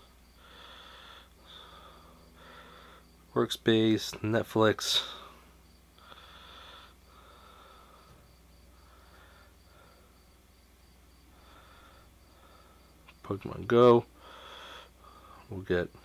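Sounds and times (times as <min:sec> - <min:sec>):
soft breaths: 0:00.0 - 0:03.3, 0:04.9 - 0:13.2, 0:14.1 - 0:16.0.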